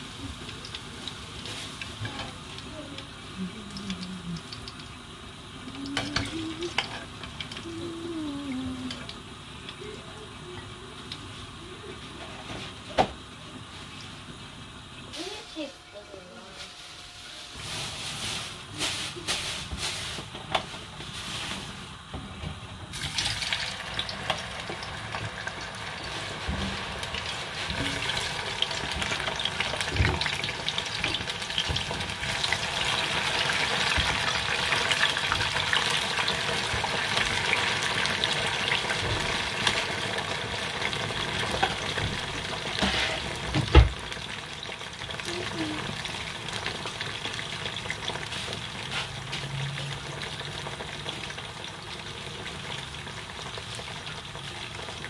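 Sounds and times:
food deep-frying in oil: 0.0s - 55.0s.

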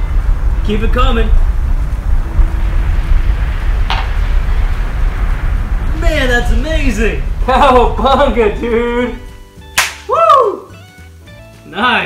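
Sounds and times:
faint background music: 5.9s - 12.0s
hands slapping in a high-five: 9.7s - 10.4s
man whooping: 10.1s - 10.8s.

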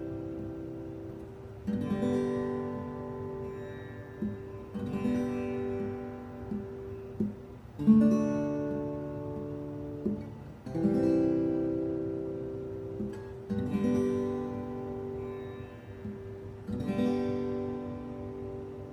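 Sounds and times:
acoustic guitar strumming chords: 0.0s - 18.9s.

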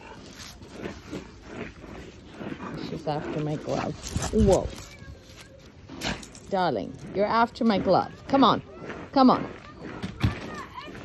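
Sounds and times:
dog breathing noisily: 0.0s - 5.1s.

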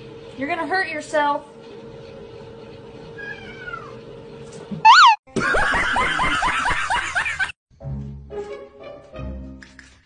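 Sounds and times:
cat yowls: 3.2s - 4.0s, 4.9s - 5.2s
cats meowing: 3.2s - 4.0s.

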